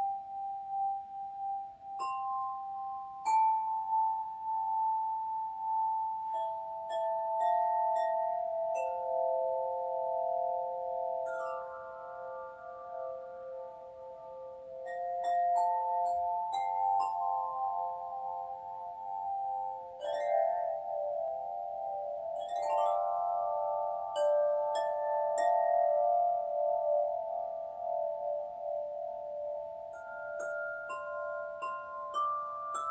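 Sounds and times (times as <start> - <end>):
chime bars struck with mallet: 0.0 - 32.9.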